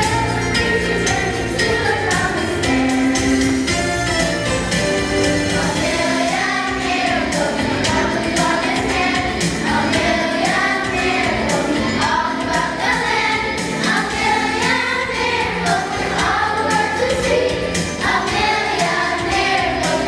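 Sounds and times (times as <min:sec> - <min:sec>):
children's choir singing: 0:00.0 - 0:03.8, 0:04.4 - 0:20.0.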